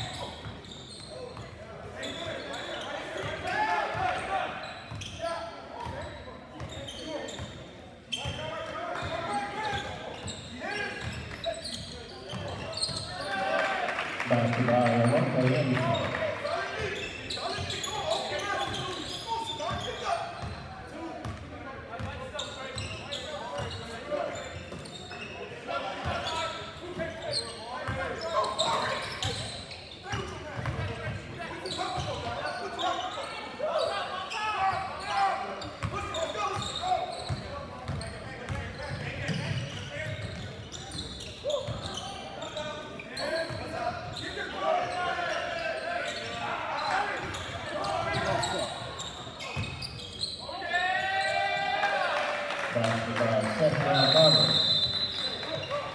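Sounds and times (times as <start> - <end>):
voices calling out in a hall: 0.0 - 55.9.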